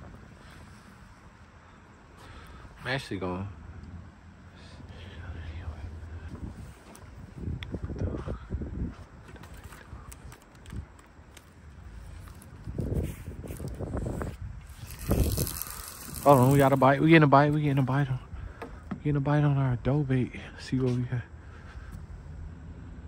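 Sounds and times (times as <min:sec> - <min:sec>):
wind gusting on microphone: 0:04.9 - 0:19.1.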